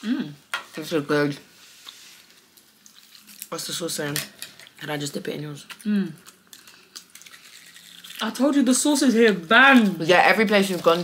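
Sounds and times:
person humming mmm: 0.0 - 0.4.

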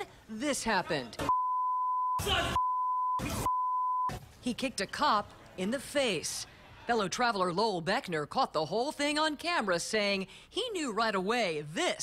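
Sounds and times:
censor bleep tone: 1.3 - 4.1.

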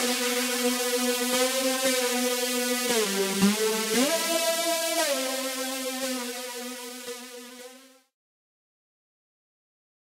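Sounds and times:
buzzy synth note: 2.7 - 7.5.

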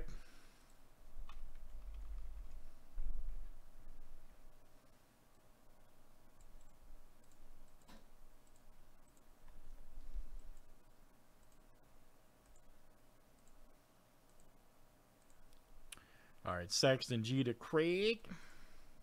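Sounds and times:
computer mouse clicks: 0.6 - 2.6, 6.3 - 10.8, 11.4 - 14.6, 15.2 - 16.1.

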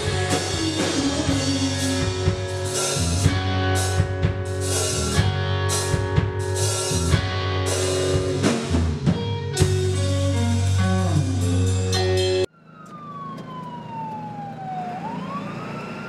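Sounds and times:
rock band playing live: 0.0 - 12.5
siren-like wail: 12.2 - 16.0.

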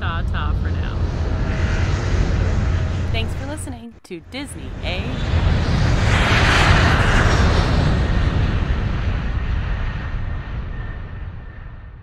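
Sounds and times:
airplane flyby rushing: 0.8 - 3.5, 4.8 - 11.4.

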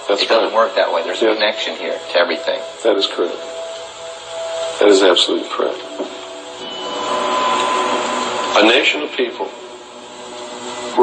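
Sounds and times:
steady hiss: 0.0 - 11.0
thin steady whine: 0.0 - 11.0.

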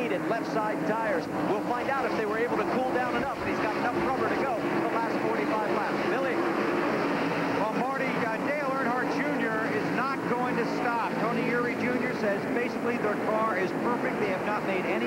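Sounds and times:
commentator speaking: 0.0 - 6.7, 7.4 - 15.0
race car engines droning: 0.0 - 15.0.

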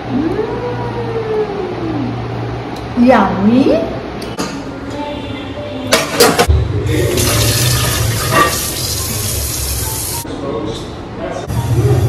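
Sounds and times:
metal dishes clattering: 7.8 - 8.8.

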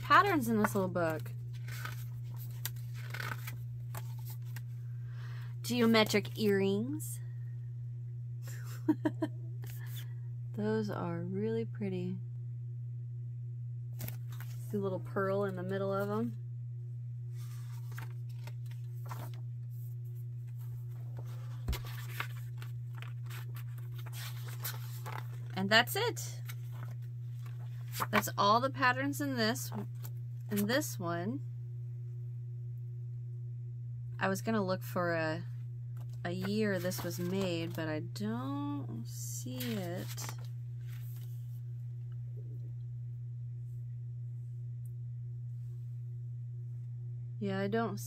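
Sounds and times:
steady low hum: 0.0 - 48.0
paper rustling: 0.1 - 4.7, 17.4 - 25.6, 26.4 - 28.3, 36.0 - 37.8, 39.5 - 41.4.

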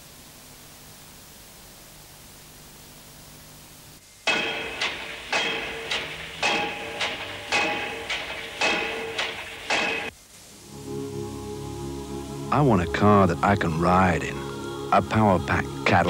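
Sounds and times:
faint hiss: 0.0 - 16.0
metallic clanks ringing: 4.2 - 10.2.

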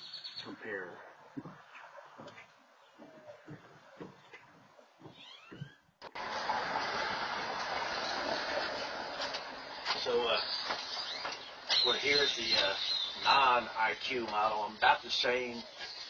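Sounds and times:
bird chirping: 0.0 - 5.9, 9.7 - 16.0
outdoor background hiss: 0.0 - 16.0
footsteps on wooden deck: 1.2 - 14.6.

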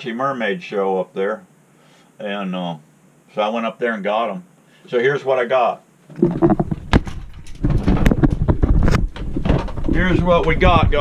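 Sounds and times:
camera handling rumble: 6.1 - 9.9
knocks on camera: 6.1 - 9.9.

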